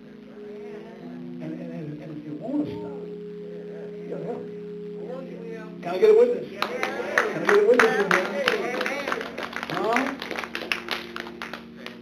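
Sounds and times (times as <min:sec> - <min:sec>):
keyboard chord held: 0:00.0 - 0:12.0
people clapping unevenly: 0:06.6 - 0:12.0.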